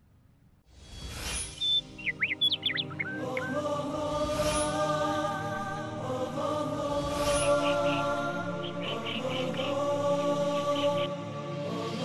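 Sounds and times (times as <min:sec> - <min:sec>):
birds chirping: 0:01.5 - 0:03.9, 0:07.4 - 0:11.2
chant of held voices: 0:02.6 - 0:12.0.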